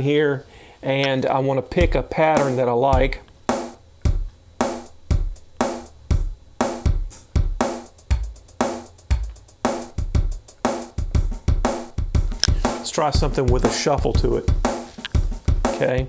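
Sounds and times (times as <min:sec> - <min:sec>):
drum machine beat: 0:01.8 - 0:16.0.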